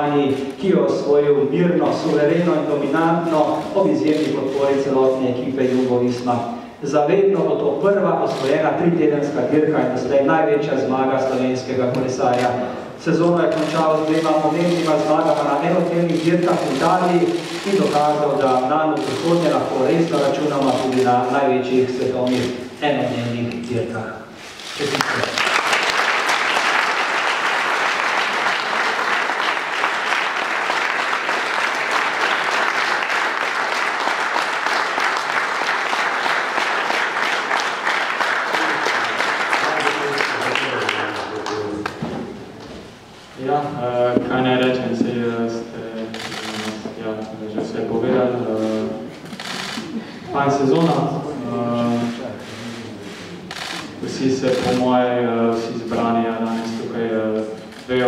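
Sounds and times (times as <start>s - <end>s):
man speaking into a microphone: 0.0s - 25.4s, 38.6s - 42.2s, 43.4s - 49.2s, 50.2s - 58.0s
crowd applause: 24.8s - 42.0s, 49.3s - 50.0s.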